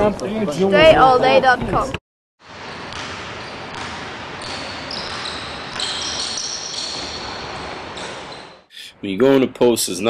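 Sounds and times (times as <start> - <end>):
sneaker squeaks: 2.6 - 8.7.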